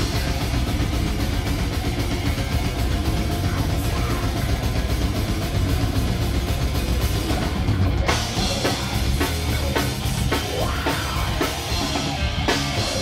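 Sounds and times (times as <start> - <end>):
bass guitar: 0.0 - 13.0
distorted electric guitar: 0.0 - 13.0
drums: 0.0 - 13.0.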